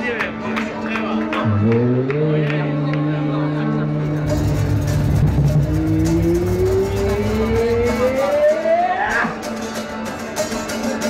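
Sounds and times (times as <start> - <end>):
low pulsing bass: 1.4 - 8.7
note sliding upward in pitch: 3.0 - 9.0.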